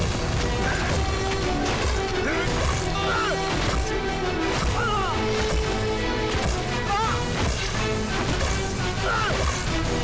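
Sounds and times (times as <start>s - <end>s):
background film music: 0.0s - 10.0s
men shouting: 2.2s - 3.6s, 4.7s - 5.4s, 6.8s - 7.4s, 8.8s - 9.6s.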